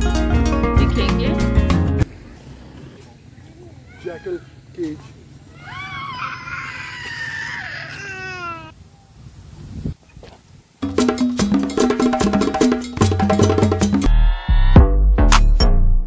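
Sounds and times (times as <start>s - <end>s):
child whining cry: 5.5s - 8.8s
loud music with percussive beat: 10.8s - 16.0s.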